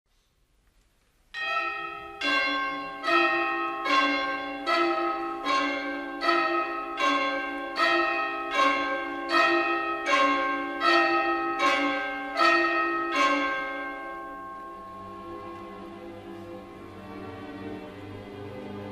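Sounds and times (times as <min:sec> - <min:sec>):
orchestral bells struck: 0:01.4 - 0:18.9.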